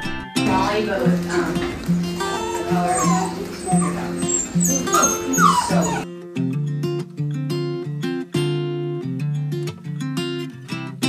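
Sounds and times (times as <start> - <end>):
background music: 0.0 - 9.4
puppies whimpering and yipping: 1.2 - 6.1.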